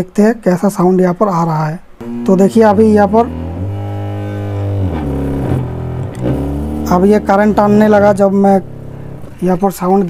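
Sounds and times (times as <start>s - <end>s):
low sine test tone: 2.0s - 9.5s.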